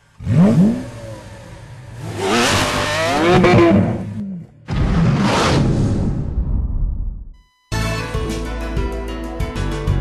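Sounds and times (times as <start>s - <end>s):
car engine revving: 0.2s - 5.8s.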